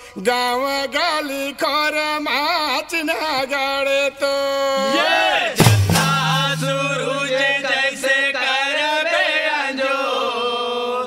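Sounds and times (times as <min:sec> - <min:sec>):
man chanting devotional song: 0:00.0 - 0:08.4.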